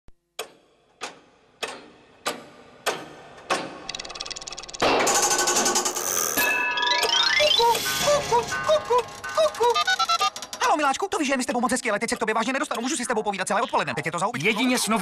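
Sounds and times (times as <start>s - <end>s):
clockwork whirring: 2.3s - 11.0s
clock ticking loudly: 7.5s - 10.7s.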